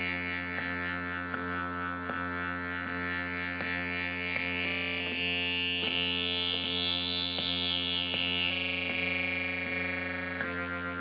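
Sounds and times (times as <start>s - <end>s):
low drone: 0.0s - 11.0s
soft pulse: 0.0s - 11.0s.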